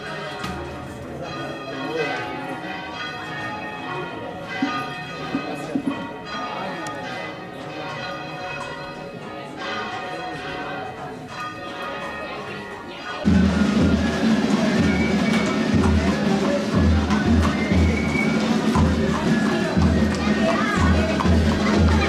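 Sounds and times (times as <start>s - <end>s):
church bells pealing: 0.0s - 22.0s.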